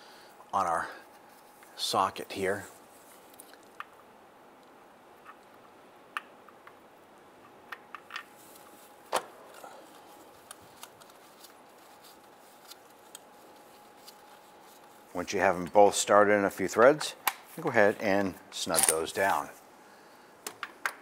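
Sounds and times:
faint steady hum: 0.0s - 21.0s.

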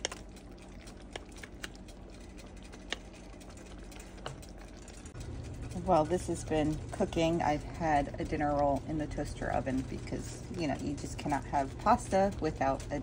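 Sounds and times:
low steady hum: 0.0s - 13.0s
pasta clicking and tapping: 0.0s - 13.0s.

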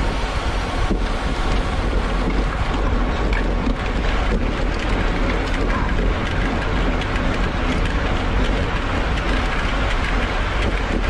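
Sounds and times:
bike rattling: 0.0s - 11.0s
bike tyre roar on rough asphalt: 0.0s - 11.0s
wind rush on microphone: 0.0s - 11.0s.

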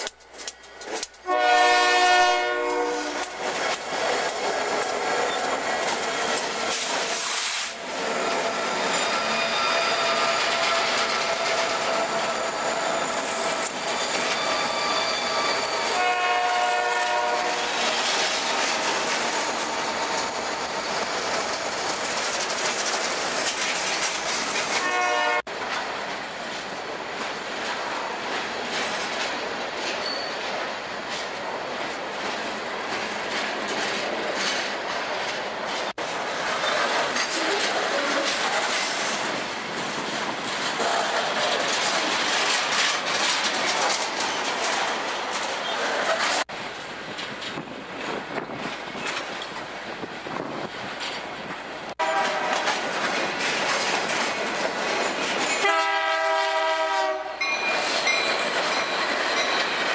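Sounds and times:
wheels clicking over rail joints: 0.0s - 9.2s, 16.0s - 24.9s, 25.5s - 59.9s
freight train passing: 0.0s - 59.9s
train horn: 1.2s - 3.4s, 15.8s - 17.9s, 24.8s - 25.5s, 52.0s - 52.8s, 55.6s - 57.5s.

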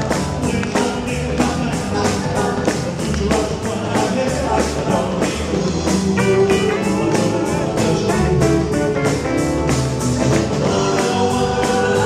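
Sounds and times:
drums with steady beat: 0.0s - 12.0s
electric guitar: 0.0s - 12.0s.

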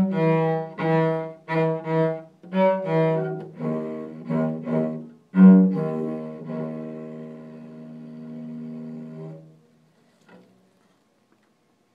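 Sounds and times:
cello bowed note: 0.0s - 9.6s.

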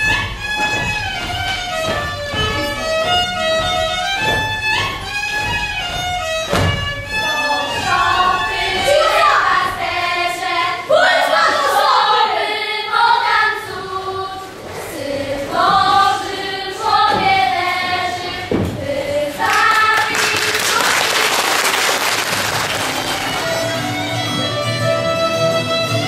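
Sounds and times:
fiddle music with plucked strings: 0.0s - 8.9s, 23.2s - 26.0s
young voices singing together: 7.1s - 21.4s.

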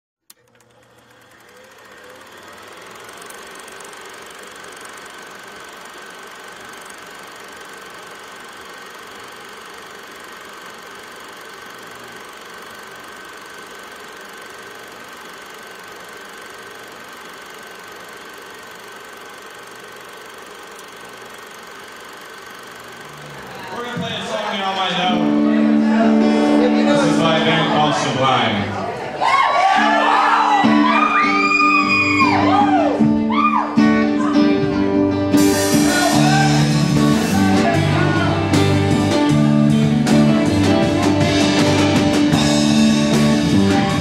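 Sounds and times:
film projector running: 0.2s - 28.6s, 33.8s - 44.0s
click: 0.3s - 2.3s, 20.6s - 21.4s.

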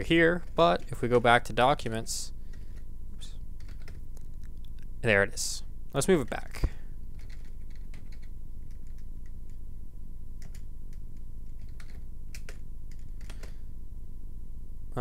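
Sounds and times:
steady low hum: 0.0s - 15.0s
computer keyboard typing: 3.6s - 4.3s, 7.2s - 9.0s, 10.4s - 10.7s, 11.5s - 13.6s.

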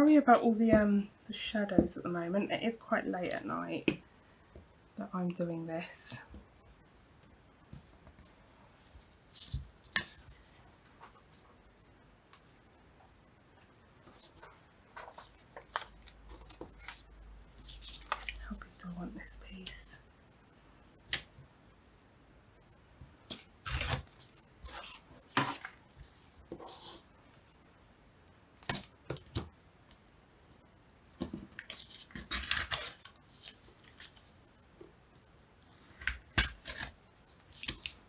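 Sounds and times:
paper rustling: 14.0s - 18.4s, 31.3s - 34.4s
paper tearing: 23.3s - 25.7s, 31.6s - 34.2s.

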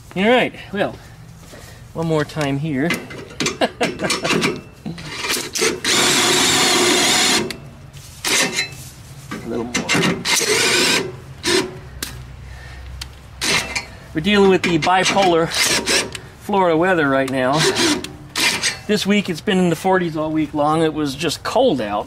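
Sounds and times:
handling clicks and knocks: 2.3s - 5.8s
cordless drill running: 5.4s - 7.6s.

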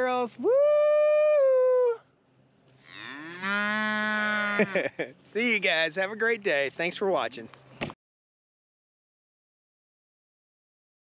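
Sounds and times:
cow mooing: 2.8s - 4.8s.

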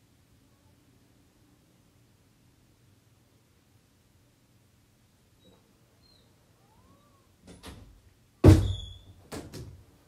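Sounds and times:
loud thump with ringing: 8.4s - 8.9s.

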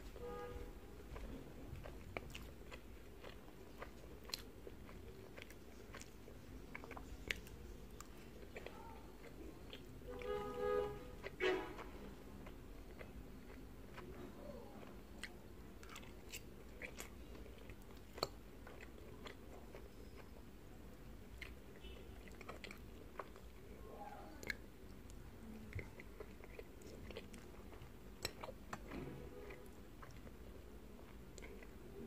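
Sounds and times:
close chewing and mouth sounds: 0.0s - 32.0s.

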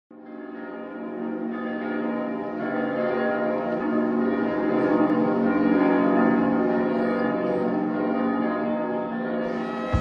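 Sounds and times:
church bells ringing: 0.1s - 10.0s.

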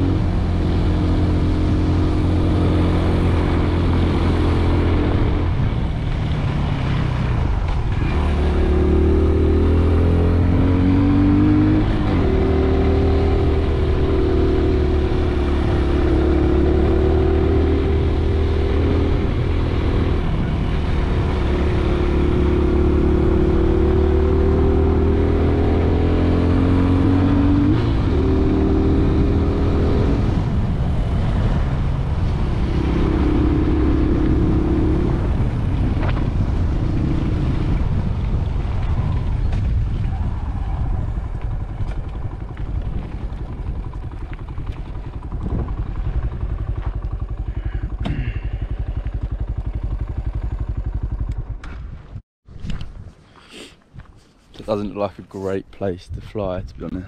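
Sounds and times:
motorcycle engine running: 0.0s - 52.2s.

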